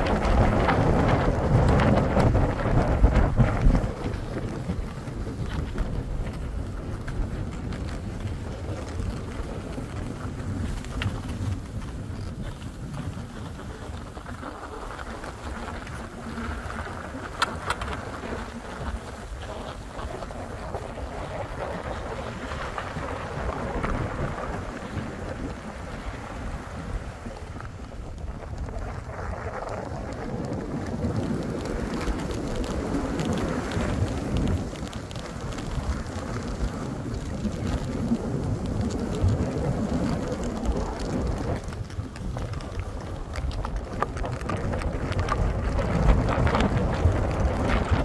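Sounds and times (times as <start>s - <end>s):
skis sliding over snow: 0.0s - 48.0s
wind rumbling on microphone: 0.0s - 48.0s.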